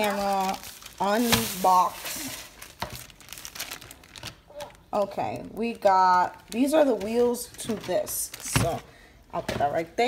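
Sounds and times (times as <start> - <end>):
plastic bag crinkling: 0.0 - 9.0.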